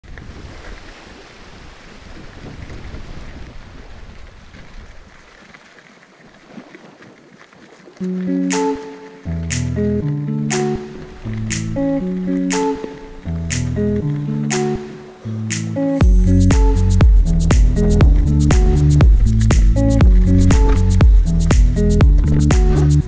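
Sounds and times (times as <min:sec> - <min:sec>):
bike tyres rolling on gravel: 0:00.0 - 0:08.0
music with plucked notes and beat: 0:08.0 - 0:23.0.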